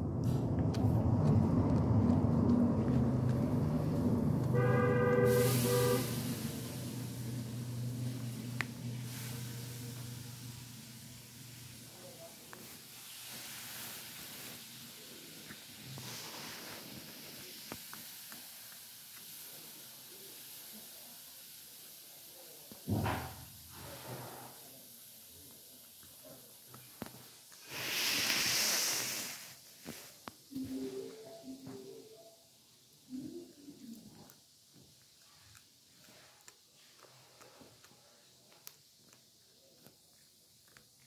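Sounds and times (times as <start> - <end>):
loud hissing rush: 0.0 - 30.3
sharp thump: 22.9 - 23.5
kitten chewing clicks: 35.0 - 41.0.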